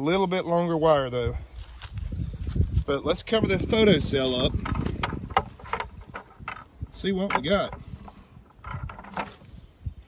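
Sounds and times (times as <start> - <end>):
wind rumble on microphone: 0.8 - 10.0
plastic bucket knocks and clicks: 4.5 - 9.5.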